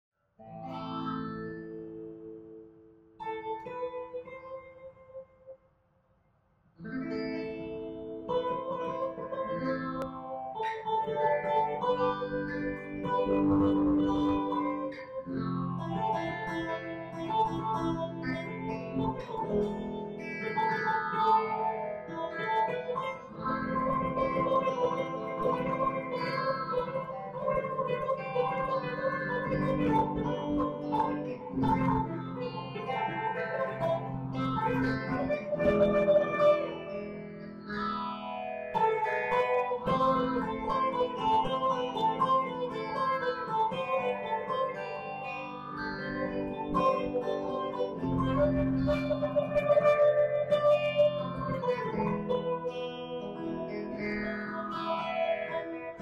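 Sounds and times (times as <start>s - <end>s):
electric guitar duet: 0.4s - 5.4s, 6.8s - 56.0s.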